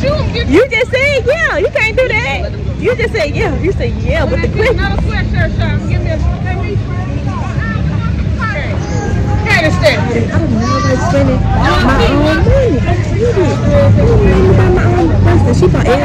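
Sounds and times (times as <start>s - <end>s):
low outdoor rumble: 0.0s - 16.0s
people talking and chattering: 0.0s - 16.0s.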